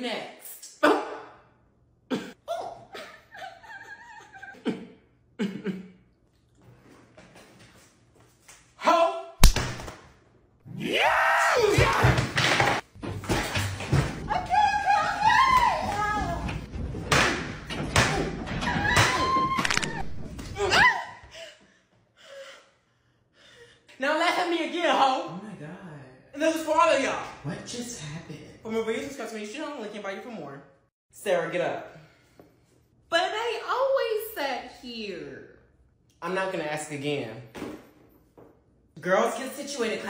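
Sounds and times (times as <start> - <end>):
person coughing: 2.1 - 2.4, 5.4 - 6.0.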